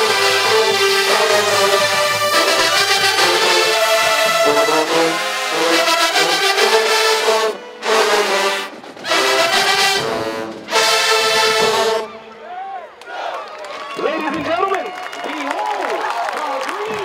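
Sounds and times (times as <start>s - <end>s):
marching band brass chords: 0.0s - 13.3s
faint crowd voices: 8.7s - 17.0s.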